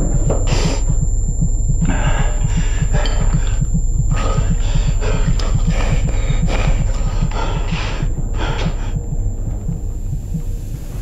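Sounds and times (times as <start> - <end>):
deep fast pulsing throb: 0.0 - 11.0.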